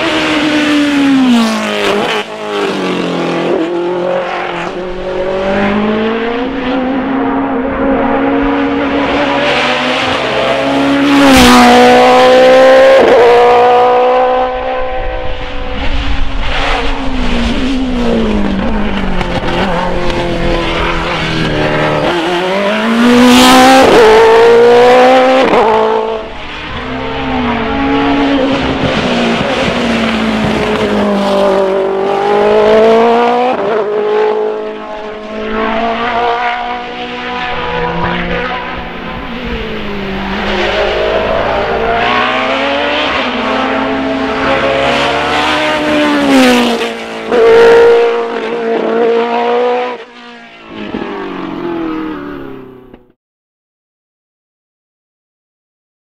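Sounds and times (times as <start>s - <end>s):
racing car engines revving: 0.0s - 53.2s.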